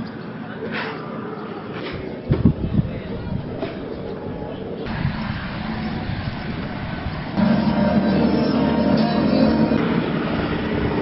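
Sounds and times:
street noise: 0:00.0 - 0:11.0
vehicle engine running: 0:04.9 - 0:10.1.

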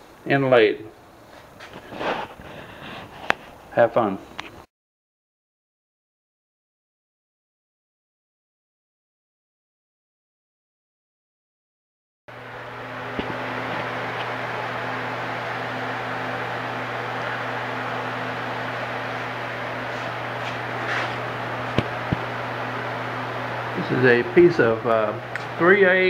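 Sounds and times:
electric machine humming: 0:12.3 - 0:26.0.

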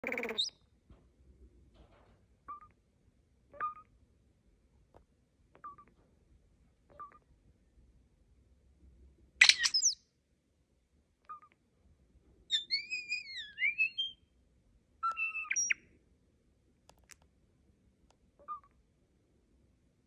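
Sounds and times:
starling calling: 0:00.0 - 0:00.5, 0:09.4 - 0:10.0, 0:12.5 - 0:14.2, 0:15.0 - 0:15.8
bird chirps: 0:00.0 - 0:00.6, 0:03.6 - 0:03.9, 0:09.4 - 0:10.0, 0:12.5 - 0:14.3, 0:15.0 - 0:15.9, 0:18.4 - 0:18.8
high whistles and rasps: 0:09.4 - 0:10.0, 0:12.5 - 0:14.2, 0:15.1 - 0:15.8.

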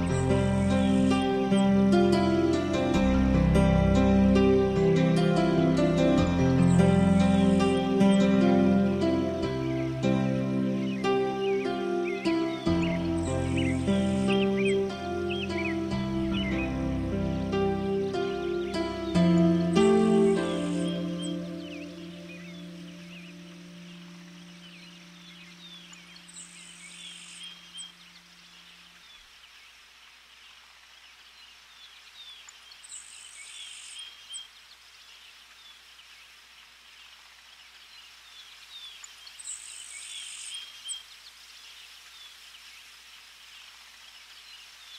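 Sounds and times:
soft background music chord: 0:00.0 - 0:28.4
high buzzy bird call: 0:05.5 - 0:28.6
small bird chirps: 0:18.0 - 0:29.5, 0:31.1 - 0:44.9.

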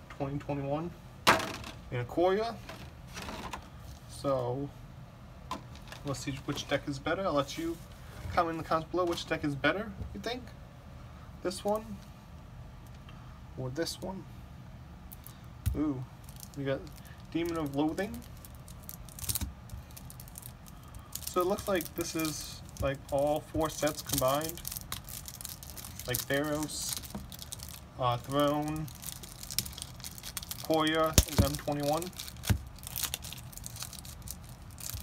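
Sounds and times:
shrink-wrapped cards crinkling: 0:16.2 - 0:35.0.

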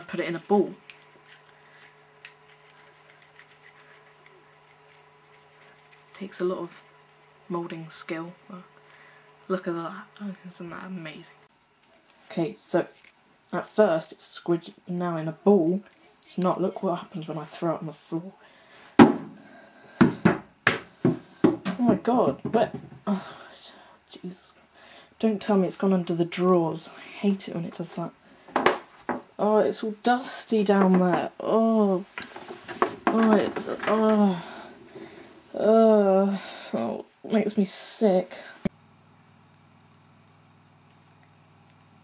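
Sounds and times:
putty bouncing knocks: 0:32.3 - 0:34.0.

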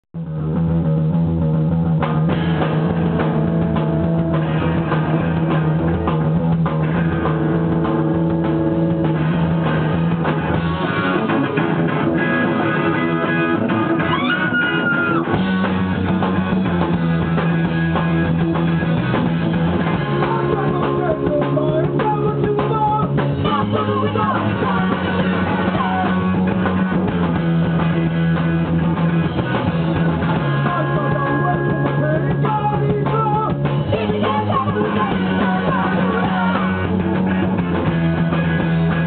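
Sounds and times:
rock band playing live: 0:00.2 - 0:39.0.

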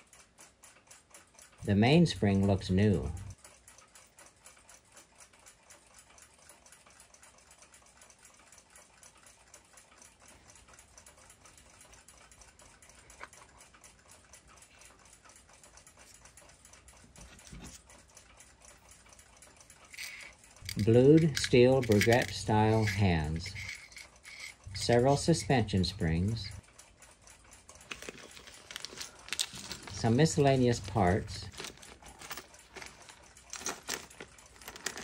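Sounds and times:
clock parts clicking in metal tin: 0:14.7 - 0:26.7, 0:27.4 - 0:35.0.

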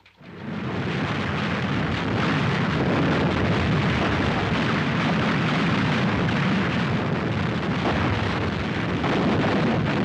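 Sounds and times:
artillery barrage rumble: 0:00.3 - 0:10.0.

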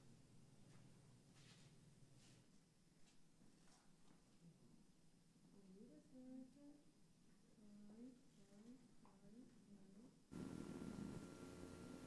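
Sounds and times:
steady electrical hum: 0:04.8 - 0:12.0
background hiss: 0:10.3 - 0:12.0.

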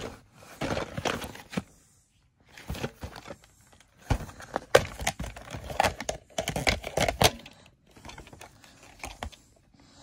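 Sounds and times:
plastic cassette case clicks and rattles: 0:04.0 - 0:09.4.

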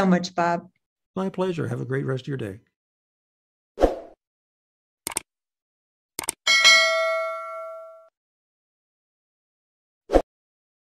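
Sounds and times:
notification bell ding: 0:06.5 - 0:08.1.

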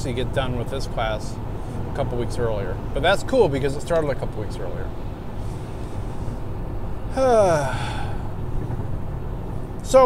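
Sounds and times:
car cabin road rumble: 0:00.0 - 0:10.0
man breathing in: 0:05.4 - 0:06.5, 0:07.5 - 0:08.4
man sighing: 0:07.1 - 0:08.4.

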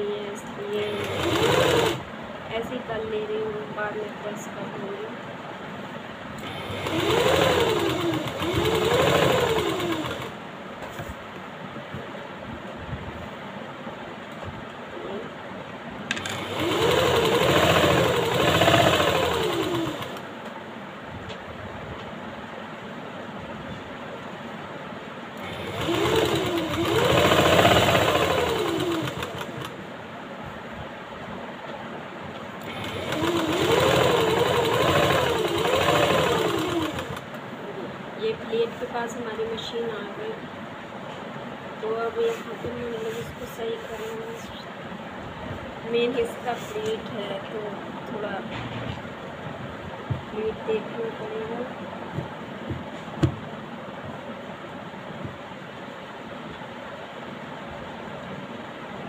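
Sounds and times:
electric sewing machine stitching: 0:00.8 - 0:02.1, 0:06.4 - 0:10.4, 0:16.1 - 0:20.3, 0:25.4 - 0:29.8, 0:32.6 - 0:37.4.

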